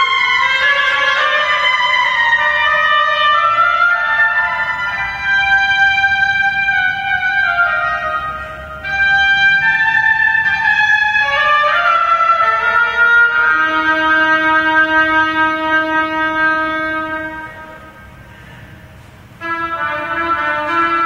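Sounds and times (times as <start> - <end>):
solo oboe melody: 0.0 - 21.0.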